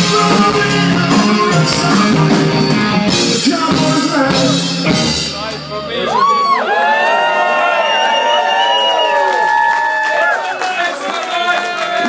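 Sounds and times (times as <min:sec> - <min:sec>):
audience cheering and whooping: 0:06.0 - 0:12.0.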